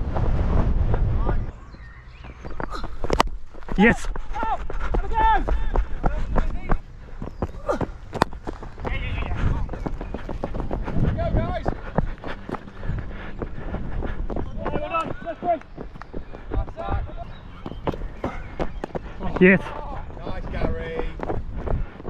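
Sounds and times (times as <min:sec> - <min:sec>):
distant shouts: 0:03.7 - 0:08.1, 0:14.4 - 0:21.2.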